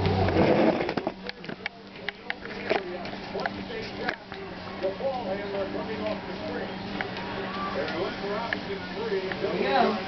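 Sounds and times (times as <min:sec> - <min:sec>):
treadmill motor humming: 0:00.0 - 0:10.0
light ticks and taps: 0:01.2 - 0:05.6, 0:07.0 - 0:09.5.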